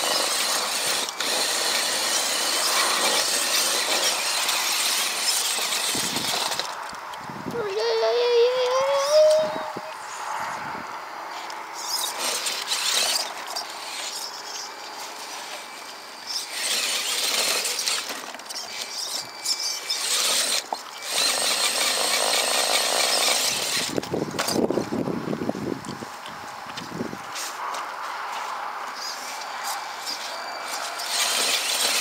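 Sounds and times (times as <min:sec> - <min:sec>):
small electric motor whining: 0:00.0 - 0:10.6, 0:11.3 - 0:24.9, 0:29.4 - 0:32.0.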